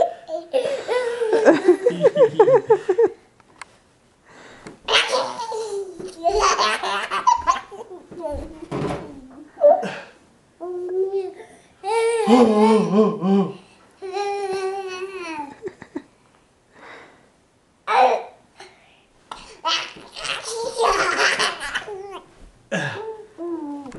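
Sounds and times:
toddler laughing: 0:04.9 - 0:08.4, 0:14.0 - 0:15.9, 0:19.6 - 0:23.8.

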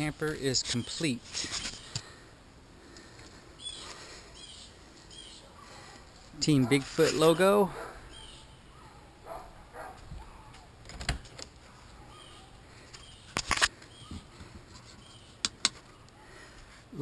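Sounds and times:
faint bird chirps: 0:08.1 - 0:09.0, 0:12.0 - 0:16.1.

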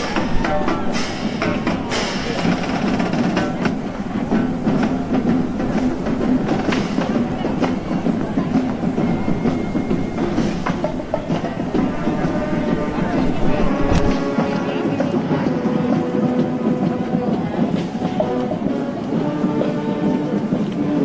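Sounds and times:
marching band music: 0:00.0 - 0:21.0
street noise: 0:00.0 - 0:21.0.

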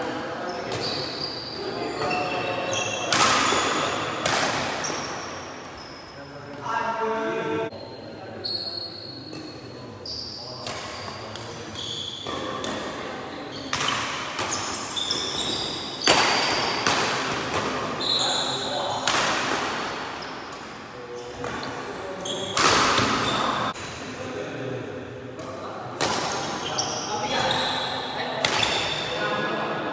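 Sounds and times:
shoes squeaking on wooden floor: 0:14.5 - 0:16.8.

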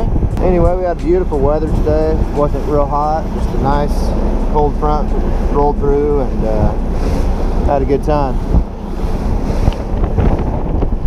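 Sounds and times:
outboard motor: 0:00.0 - 0:11.0
water rushing along hull: 0:00.0 - 0:11.0
wind buffeting microphone: 0:00.0 - 0:11.0.

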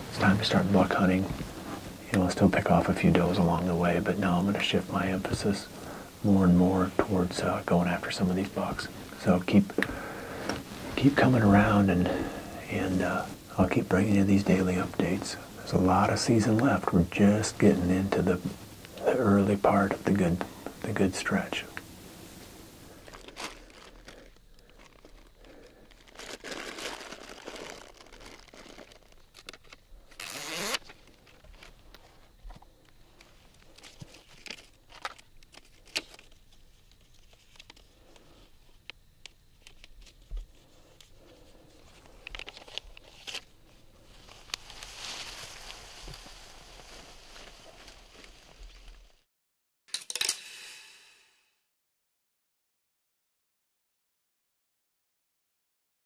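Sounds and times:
gear rustling and crinkling: 0:00.0 - 0:49.2.

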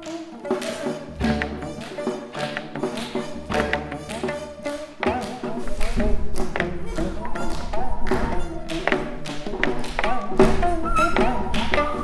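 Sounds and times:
sharp percussion strokes: 0:00.0 - 0:12.0.

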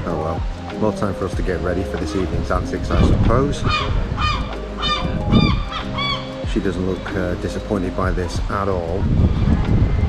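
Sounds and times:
gulls calling: 0:00.9 - 0:08.1.

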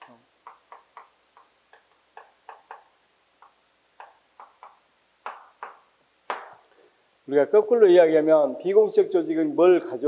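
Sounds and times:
chalk tapping on chalkboard: 0:03.4 - 0:06.6.

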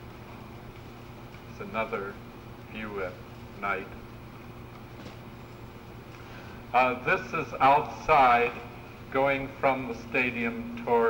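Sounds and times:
low hum with tape hiss: 0:00.0 - 0:11.0.

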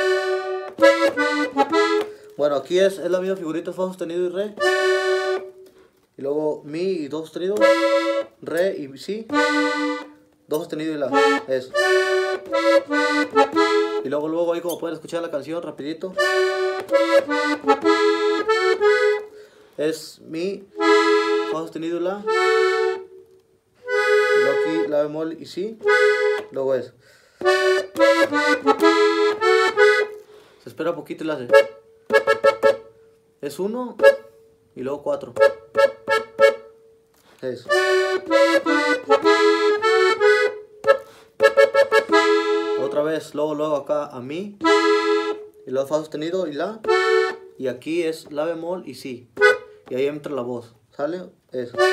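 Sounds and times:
piano accordion melody: 0:00.0 - 0:06.1, 0:07.3 - 0:43.9, 0:44.6 - 0:50.4, 0:51.6 - 0:51.9.

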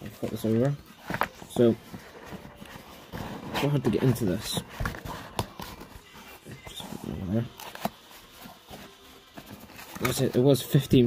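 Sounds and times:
cardboard box rustling and tapping: 0:00.0 - 0:06.0.

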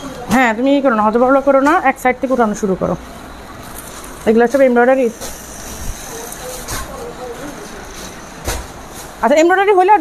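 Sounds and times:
faint voices: 0:03.0 - 0:08.6
thump: 0:08.4 - 0:08.7.

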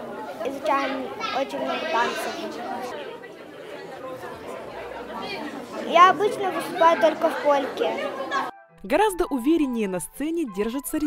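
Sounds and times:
background chatter of people: 0:00.0 - 0:09.0.

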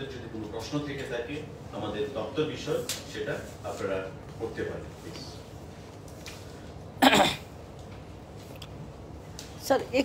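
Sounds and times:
room hum: 0:00.0 - 0:10.0
sharp cough: 0:07.0 - 0:07.5.

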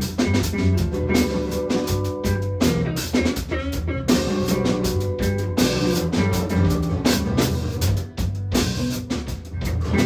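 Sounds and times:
band jamming: 0:00.0 - 0:10.0
drum kit steady beat: 0:00.0 - 0:10.0.

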